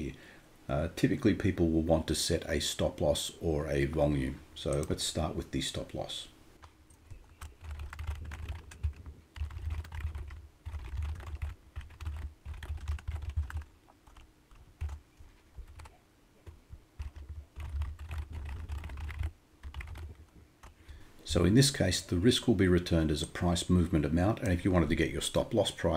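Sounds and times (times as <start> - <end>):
typing on a keyboard: 7.0 - 15.0, 15.6 - 20.8.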